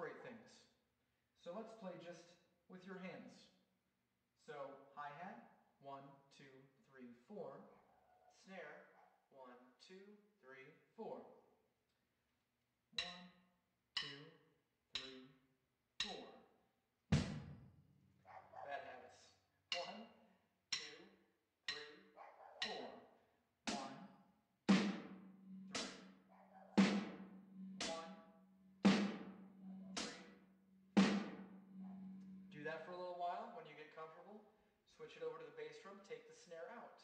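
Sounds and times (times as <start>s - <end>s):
closed hi-hat strokes: 13.0s - 13.3s, 14.0s - 14.4s, 15.0s - 15.3s, 16.0s - 16.4s, 19.1s - 20.1s, 20.7s - 21.1s, 21.7s - 22.0s, 23.7s - 32.8s
snare drum strokes: 19.7s - 20.0s, 23.7s - 24.1s, 24.7s - 26.1s, 26.8s - 28.2s, 28.9s - 30.4s, 31.0s - 32.1s.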